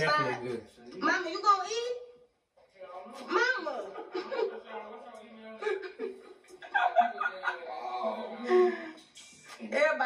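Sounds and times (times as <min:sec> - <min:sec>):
people talking quietly: 0:02.6 - 0:10.0.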